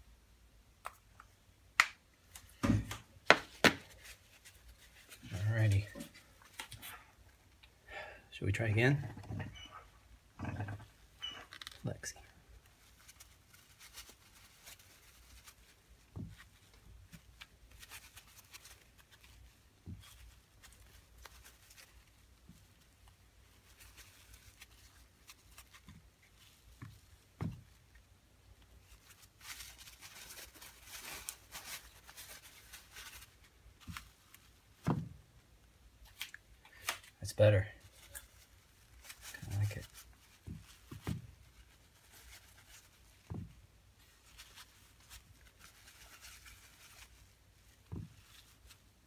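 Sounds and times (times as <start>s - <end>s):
scratchy rustling: 3.9s - 6.8s, 12.6s - 28.0s, 28.7s - 34.8s, 37.8s - 49.0s.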